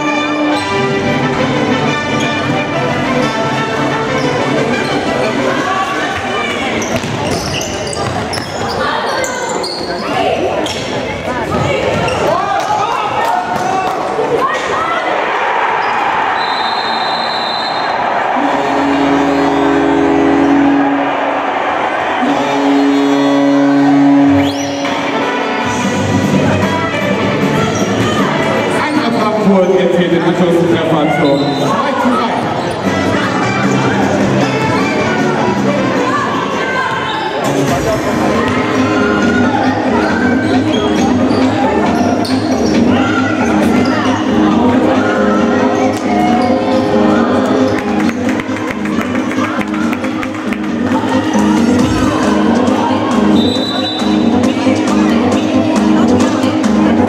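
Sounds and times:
echoing voices and shouts: 0:00.0 - 0:57.0
ball bouncing and kicked: 0:06.9 - 0:08.5
high whistle tone: 0:16.4 - 0:18.0, 0:24.4 - 0:25.0, 0:53.4 - 0:54.2.

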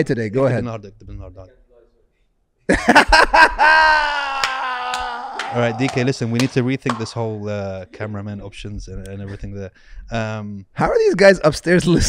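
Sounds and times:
man laughing loudly: 0:02.7 - 0:06.2.

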